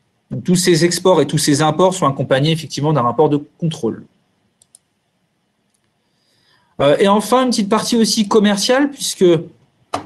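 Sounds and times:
faint computer clicks: 0:04.6 - 0:04.9.

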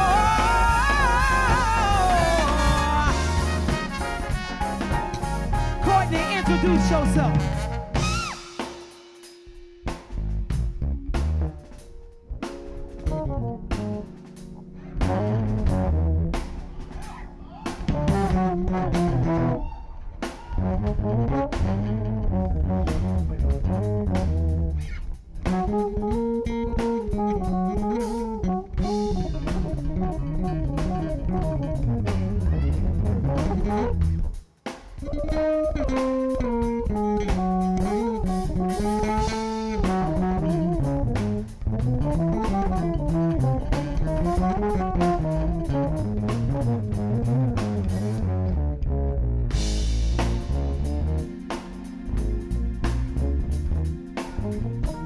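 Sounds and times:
electric bass guitar solo: 0:00.0 - 0:08.5, 0:13.1 - 0:34.4, 0:35.0 - 0:51.4, 0:52.0 - 0:55.0
drum kit keeping time: 0:00.0 - 0:48.8, 0:49.4 - 0:55.0.

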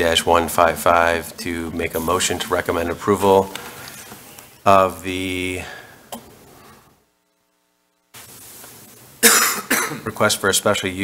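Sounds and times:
faint room hiss: 0:00.0 - 0:11.0
person coughing: 0:09.2 - 0:10.1.

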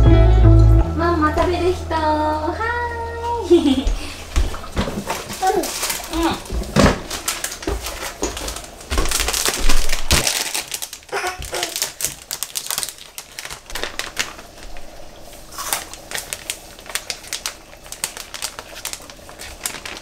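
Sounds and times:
paper bag crinkling and rustling: 0:04.8 - 0:20.0.

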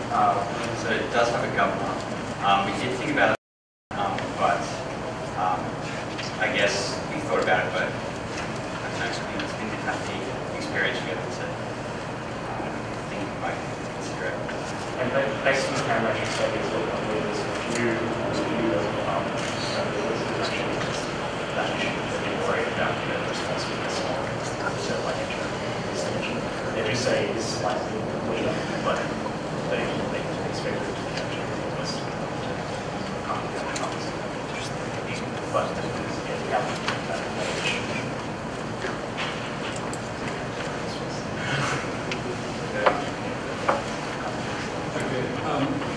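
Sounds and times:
room noise hiss: 0:00.0 - 0:45.9.

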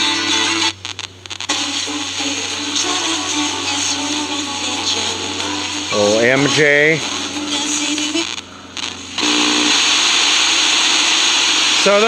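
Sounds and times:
radio static hiss: 0:00.0 - 0:12.0
brief radio signal: 0:05.4 - 0:12.0.

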